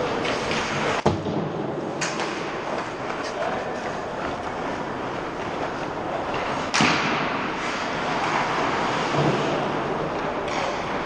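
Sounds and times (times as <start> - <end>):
ice skating and play: 0.0 - 11.0
sharp crack of stick or puck: 0.1 - 1.4, 2.0 - 3.2, 6.6 - 9.7, 10.4 - 11.0.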